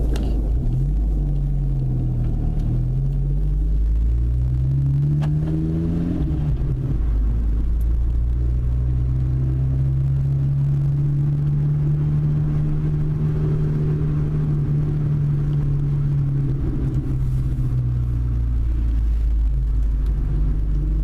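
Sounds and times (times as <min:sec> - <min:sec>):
car engine from inside cabin: 0:00.0 - 0:21.0
road rumble: 0:00.0 - 0:21.0.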